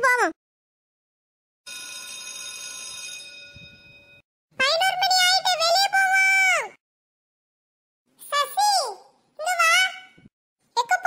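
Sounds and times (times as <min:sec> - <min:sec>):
bell ringing: 0:01.7 - 0:04.2.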